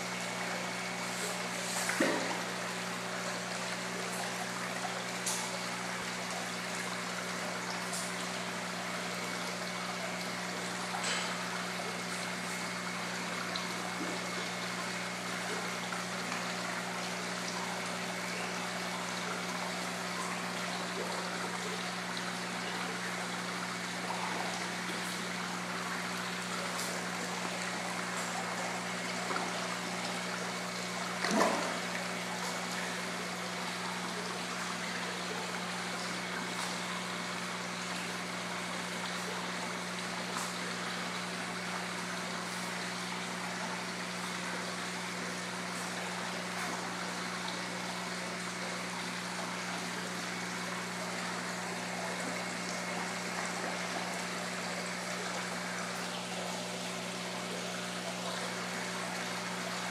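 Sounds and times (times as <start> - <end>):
water trickling into pond: 0.0 - 59.9.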